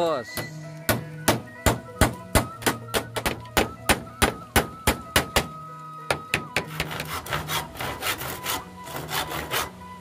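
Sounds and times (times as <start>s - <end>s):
hammer nailing into wood: 0.4s - 5.5s.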